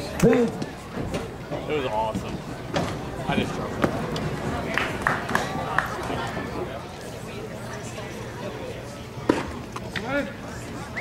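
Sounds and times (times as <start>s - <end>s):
spectators murmuring: 0.0s - 11.0s.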